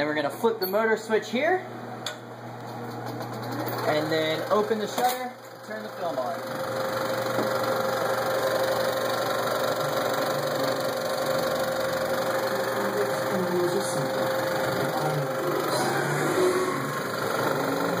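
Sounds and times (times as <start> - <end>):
film projector running: 2.5 - 18.0.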